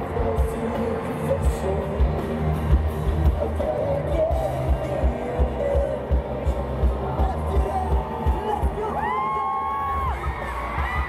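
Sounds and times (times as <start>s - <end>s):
heavy kick drum and bass beat: 0.0s - 9.2s
pop-rock band over sound system: 0.0s - 11.0s.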